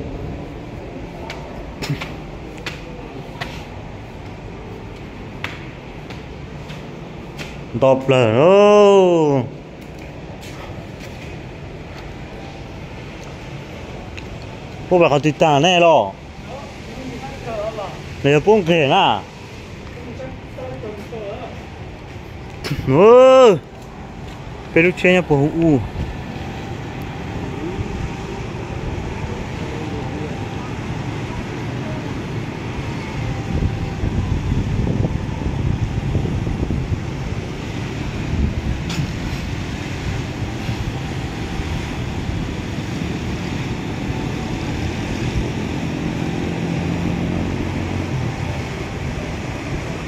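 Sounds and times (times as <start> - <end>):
distant road traffic hum: 0.0 - 50.0.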